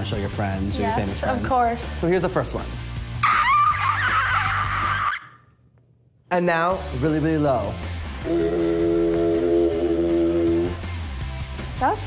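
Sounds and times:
quiet background music: 0:00.0 - 0:05.1, 0:06.2 - 0:12.0.

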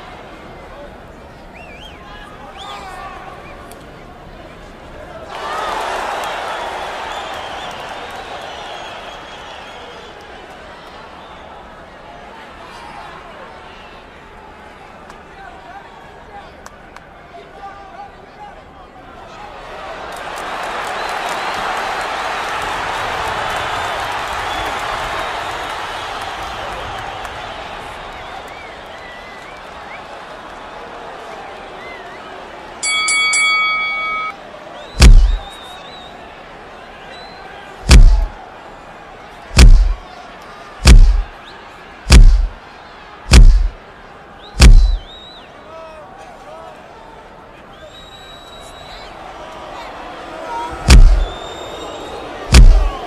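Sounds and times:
crowd noise: 0:00.0 - 0:53.0
boxing ring bell: 0:32.8 - 0:34.4
heavy punch impacts: 0:35.0 - 0:35.4, 0:37.9 - 0:38.3, 0:39.6 - 0:40.0, 0:40.8 - 0:41.3, 0:42.1 - 0:42.6, 0:43.3 - 0:43.8, 0:44.6 - 0:45.0, 0:50.9 - 0:51.3, 0:52.5 - 0:53.0.

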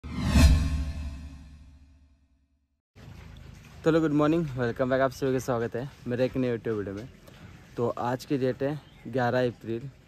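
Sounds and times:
whoosh with deep bass hit: 0:00.0 - 0:02.0.

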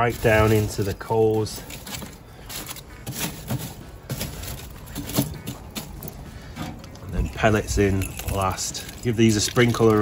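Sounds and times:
charcoal clinking and shifting: 0:00.0 - 0:10.0
knocks and scrapes: 0:00.0 - 0:10.0.

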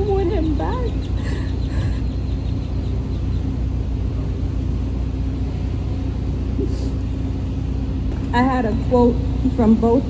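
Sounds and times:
faint steady hum: 0:00.0 - 0:10.0
low outdoor rumble: 0:00.0 - 0:10.0.

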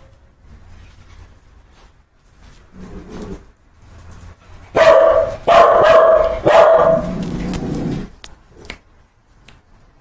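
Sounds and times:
dog barking loudly: 0:04.7 - 0:08.0.

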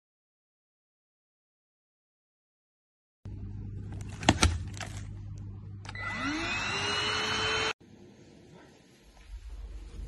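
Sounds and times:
stick vacuum motor whine: 0:05.8 - 0:07.8.

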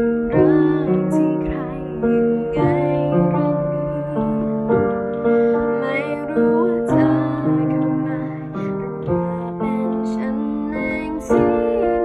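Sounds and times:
girl singing softly: 0:00.0 - 0:12.0
upright piano chords: 0:00.0 - 0:12.0.

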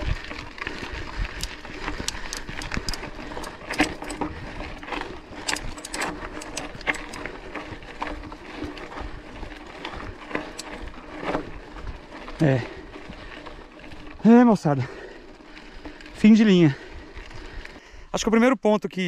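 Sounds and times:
bike clicks and rattles: 0:00.0 - 0:18.1
bike tyres crunching on gravel: 0:00.0 - 0:18.5.

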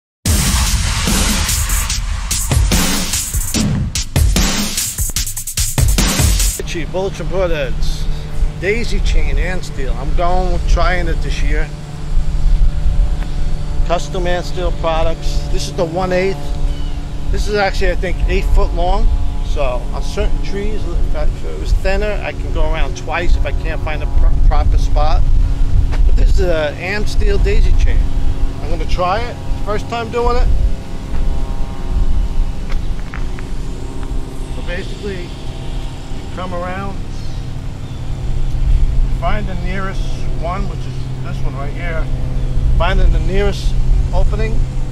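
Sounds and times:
low hum: 0:06.6 - 0:44.9
low outdoor rumble: 0:06.6 - 0:44.9.

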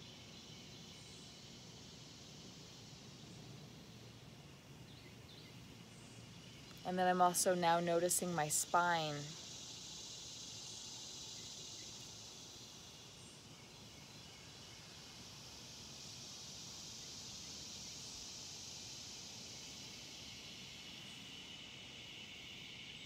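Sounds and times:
high-pitched insect chorus: 0:00.0 - 0:23.0.

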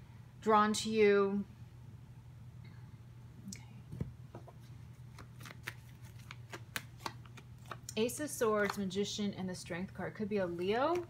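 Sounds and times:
cards clicking and flicking: 0:05.1 - 0:07.9.

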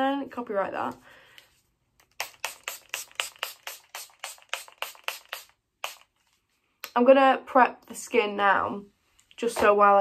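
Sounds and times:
pump spray bottle spritzing: 0:02.0 - 0:06.2.

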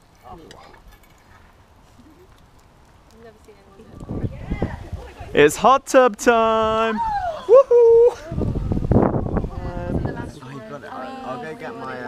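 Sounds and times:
campfire crackling: 0:00.0 - 0:12.0.

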